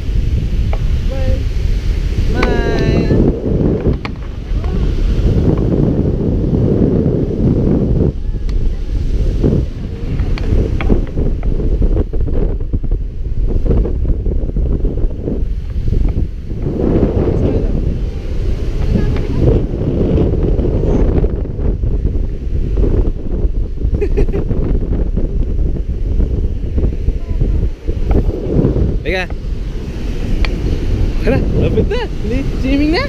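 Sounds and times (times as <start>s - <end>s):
surf breaking on shore: 0.0s - 33.0s
wind buffeting microphone: 0.0s - 33.0s.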